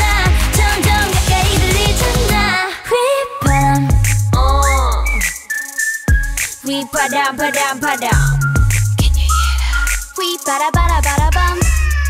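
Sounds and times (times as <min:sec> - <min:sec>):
dance track with deep bass: 0:00.0 - 0:02.6, 0:07.6 - 0:10.1, 0:10.8 - 0:12.0
sliding whistle: 0:04.6 - 0:10.6.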